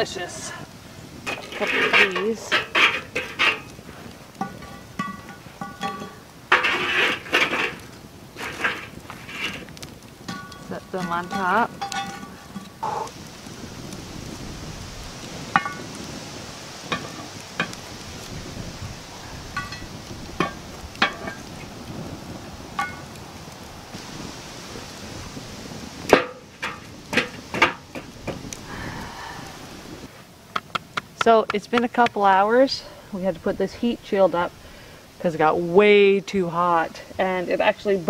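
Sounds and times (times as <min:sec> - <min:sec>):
wood fire crackling: 0:00.0 - 0:38.0.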